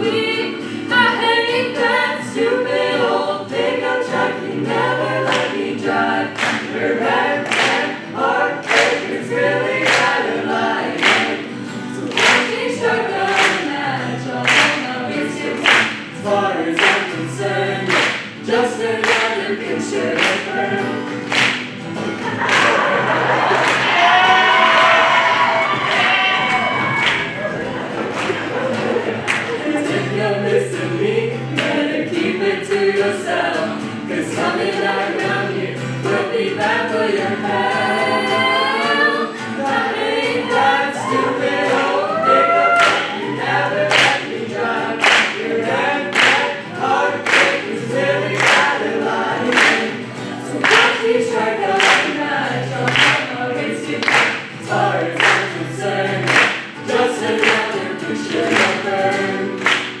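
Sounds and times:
acoustic guitar: 0.0 - 60.0
young voices singing together: 0.0 - 60.0
hand claps: 5.3 - 5.6, 6.4 - 6.7, 7.4 - 8.0, 8.6 - 9.2, 9.8 - 10.2, 10.9 - 11.4, 12.1 - 13.8, 14.4 - 16.2, 16.8 - 17.2, 17.9 - 18.4, 19.0 - 19.4, 20.2 - 20.5, 21.1 - 24.2, 24.8 - 29.8, 31.6 - 31.8, 42.8 - 43.2, 43.9 - 44.4, 45.0 - 45.5, 46.1 - 46.6, 47.2 - 47.8, 48.4 - 48.8, 49.4 - 50.0, 50.6 - 51.2, 51.8 - 52.2, 52.9 - 53.3, 54.0 - 55.6, 56.2 - 60.0.

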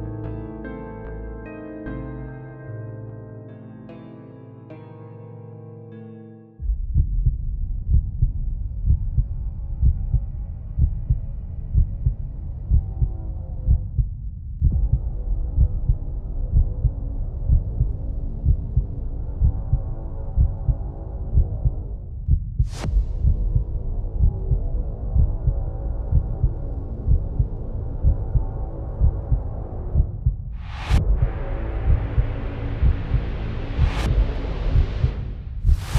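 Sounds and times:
heavy heartbeat-like thumping: 6.6 - 35.9.

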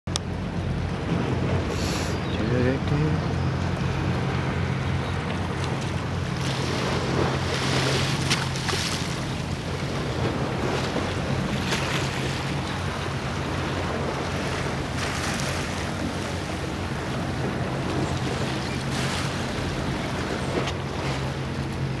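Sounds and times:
boat engine humming: 0.1 - 22.0
rushing water: 0.1 - 22.0
wind buffeting microphone: 0.2 - 22.0.

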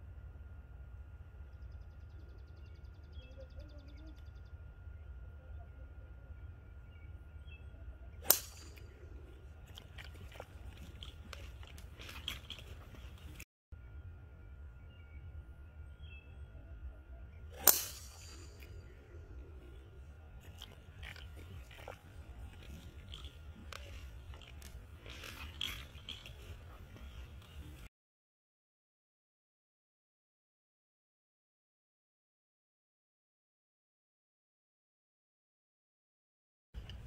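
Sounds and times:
golf club striking ball: 8.2 - 9.4, 17.5 - 18.9.

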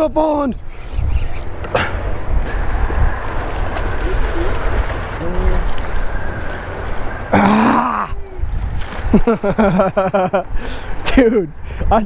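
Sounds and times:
wind buffeting microphone: 0.0 - 12.0
water sloshing against boat: 1.5 - 7.4.

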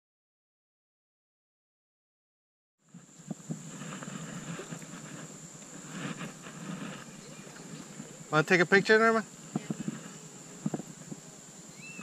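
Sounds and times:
faint high whine: 2.8 - 12.0
wind rumbling on microphone: 2.9 - 12.0.

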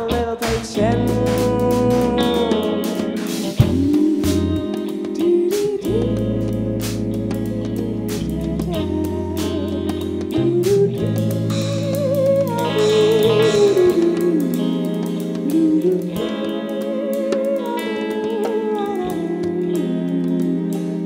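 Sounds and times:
jazz soul band playing: 0.0 - 21.0.

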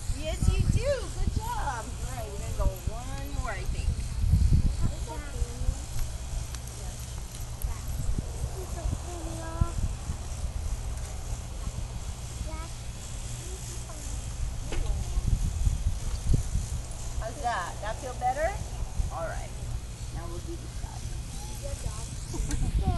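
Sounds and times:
wind buffeting microphone: 0.0 - 22.9
faint voices: 0.1 - 22.9.

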